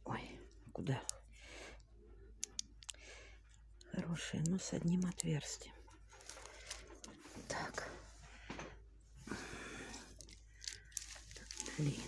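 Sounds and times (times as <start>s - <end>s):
plastic bead pack clicking: 2.4s - 5.6s, 10.1s - 12.0s.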